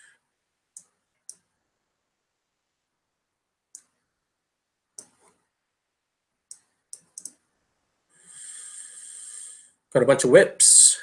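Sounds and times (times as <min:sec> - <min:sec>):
computer mouse clicks: 0:00.7 - 0:01.5, 0:03.7 - 0:04.0, 0:05.0 - 0:05.4, 0:06.5 - 0:07.4.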